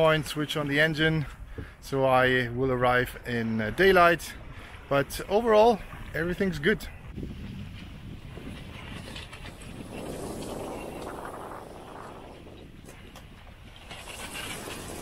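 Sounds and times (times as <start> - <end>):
wind rushing: 6.9 - 15.0.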